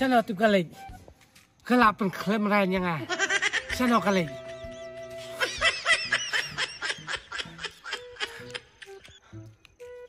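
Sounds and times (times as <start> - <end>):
background music: 0.0 - 10.0
rapid laughter: 5.3 - 9.2.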